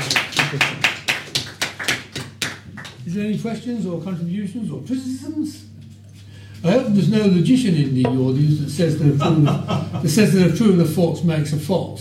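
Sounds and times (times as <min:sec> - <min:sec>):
small audience applauding: 0:00.0 - 0:03.1.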